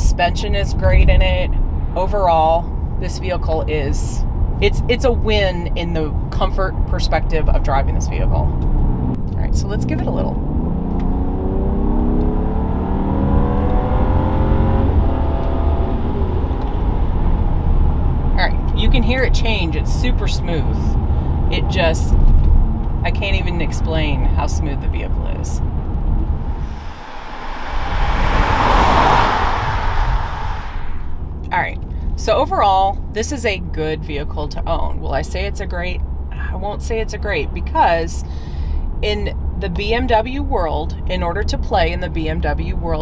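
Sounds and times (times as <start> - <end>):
low road rumble: 0.0 - 43.0
car engine accelerating: 8.0 - 18.8, 20.5 - 32.4
car driving past: 26.2 - 32.1.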